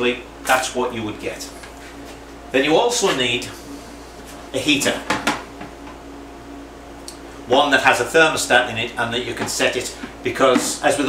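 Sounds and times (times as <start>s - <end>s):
steady low hum: 0.0s - 11.0s
plastic heater knocks and rustles: 5.0s - 6.0s.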